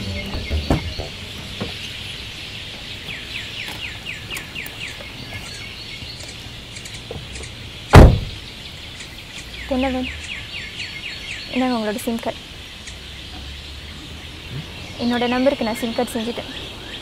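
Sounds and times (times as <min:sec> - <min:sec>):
car door shutting: 0:00.0 - 0:02.0, 0:07.0 - 0:08.4
bird chirping: 0:00.0 - 0:17.0
high outdoor hiss: 0:00.0 - 0:17.0.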